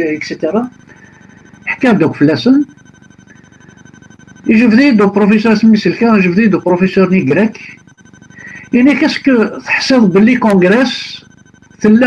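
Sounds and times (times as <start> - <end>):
person speaking over a call: 0.0 - 3.0, 3.8 - 12.0
high-pitched telephone tone: 0.0 - 12.0.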